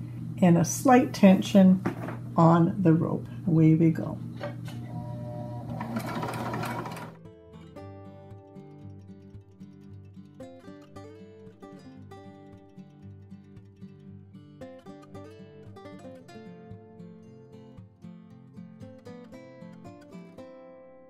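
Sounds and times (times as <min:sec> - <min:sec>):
acoustic guitar music: 0:04.0 - 0:21.0
sewing machine running: 0:04.9 - 0:07.2.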